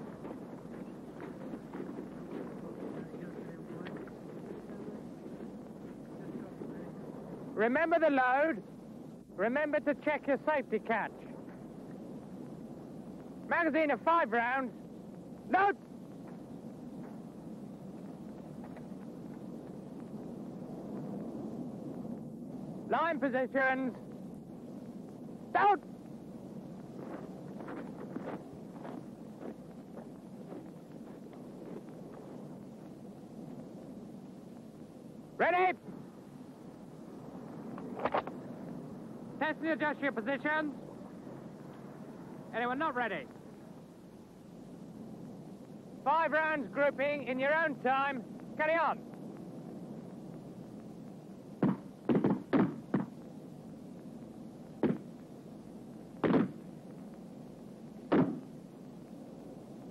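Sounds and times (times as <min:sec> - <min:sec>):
person shouting a command: 0:15.5 - 0:15.8, 0:25.5 - 0:25.8, 0:35.4 - 0:35.8, 0:46.1 - 0:49.0
rifle shots: 0:51.6 - 0:53.1, 0:56.2 - 0:56.6, 0:58.1 - 0:58.4.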